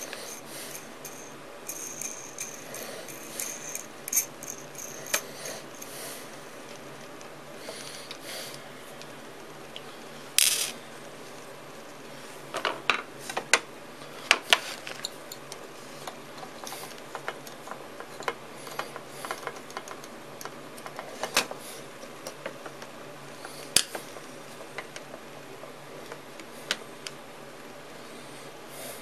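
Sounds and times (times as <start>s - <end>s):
metal bolts clicking and clinking: 0.0s - 5.3s.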